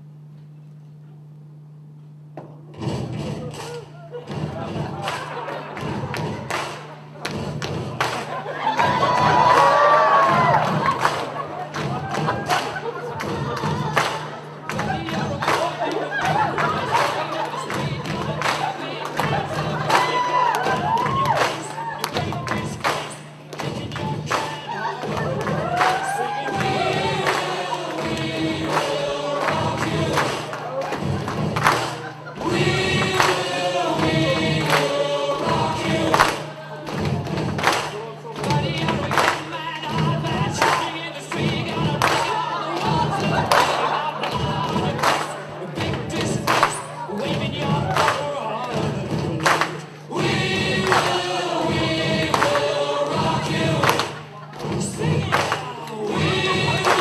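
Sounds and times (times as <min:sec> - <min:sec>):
steady low hum: 0:00.0 - 0:57.0
recorded music with singing: 0:02.8 - 0:57.0.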